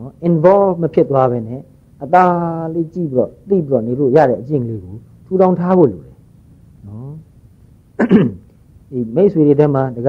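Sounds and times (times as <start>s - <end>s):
man clearing throat: 8.0s - 8.5s.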